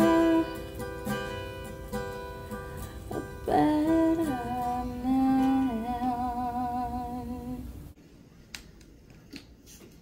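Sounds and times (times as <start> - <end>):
acoustic guitar chord: 0.0 - 7.6.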